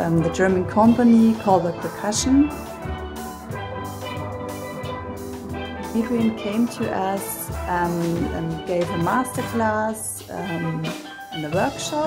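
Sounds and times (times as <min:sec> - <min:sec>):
steel band playing: 0:00.0 - 0:12.0.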